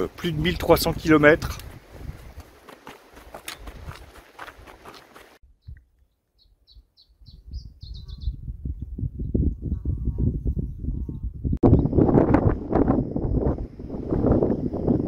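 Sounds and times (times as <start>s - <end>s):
wind buffeting microphone: 0.0s - 4.9s, 7.2s - 15.0s
songbird chirping: 5.4s - 8.5s.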